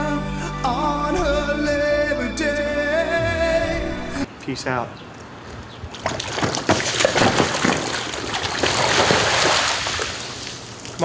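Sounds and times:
hose water splashing on pavement: 5.9 - 11.0.

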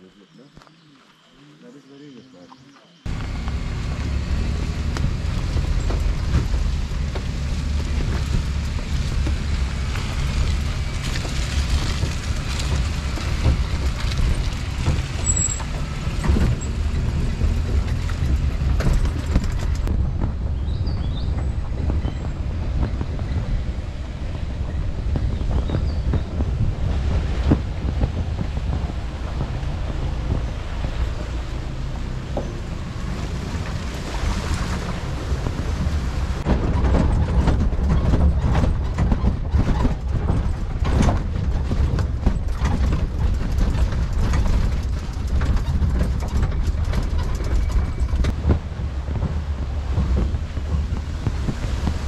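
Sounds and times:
vehicle driving on dirt track: 2.8 - 52.0
knocks and rattles: 3.1 - 33.9, 34.8 - 52.0
wind buffeting microphone: 3.1 - 52.0.

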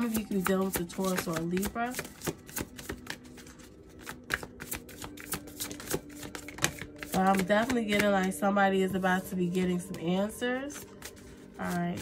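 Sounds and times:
cards being shuffled: 0.0 - 8.3, 10.7 - 12.0.

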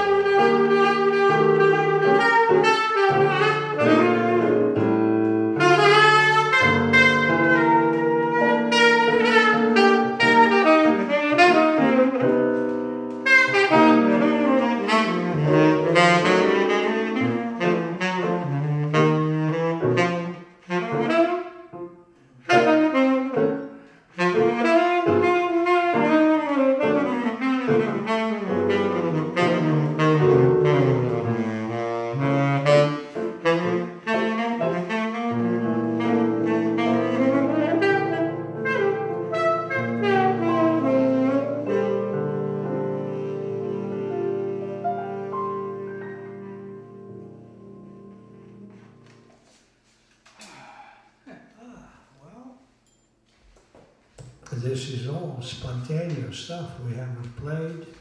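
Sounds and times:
piano chords: 0.0 - 49.8
saxophone melody: 0.0 - 50.4.

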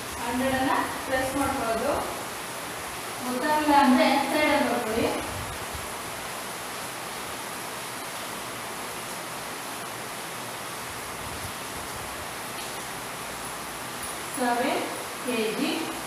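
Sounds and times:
steady background hiss: 0.0 - 16.0.

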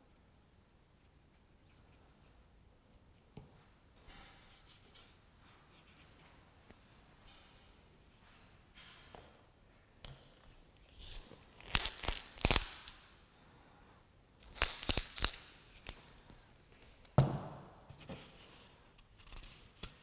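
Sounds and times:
thump: 17.2 - 17.7.

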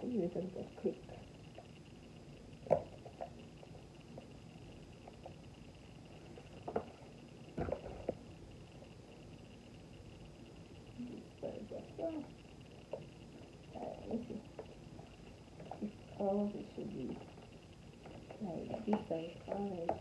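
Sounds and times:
handling creaks and rustles: 2.6 - 9.4, 17.0 - 20.0.

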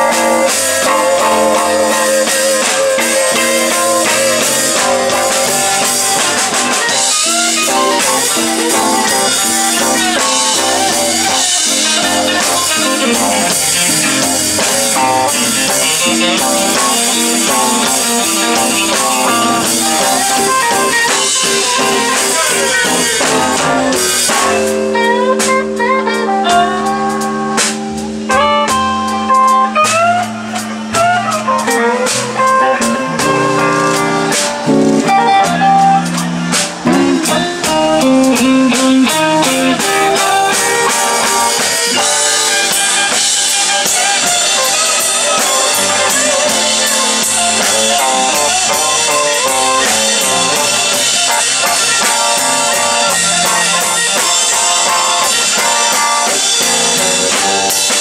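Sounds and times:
electric blues band playing: 0.0 - 58.0.

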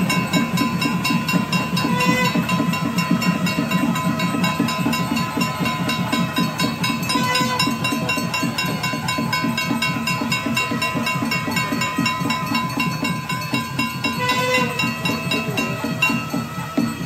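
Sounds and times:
drum beaten in fast rhythm: 0.0 - 17.0
high ringing tones: 0.0 - 17.0.

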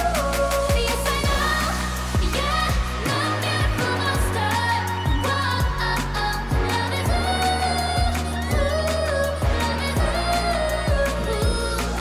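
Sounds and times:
female group vocals over pop track: 0.0 - 12.0.

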